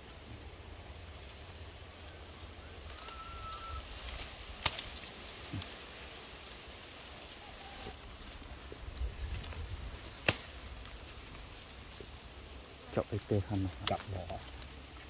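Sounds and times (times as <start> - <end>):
leafy branch rustling: 0.0 - 15.0
whistle-like bird note: 2.9 - 3.8.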